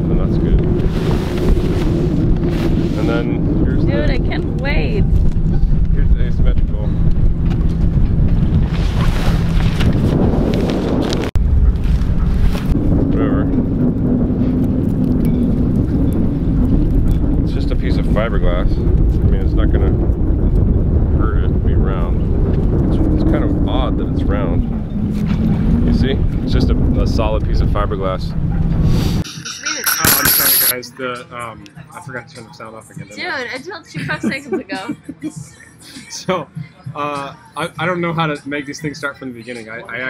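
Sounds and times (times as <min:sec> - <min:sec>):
wind rumbling on microphone: 0:00.0 - 0:29.2.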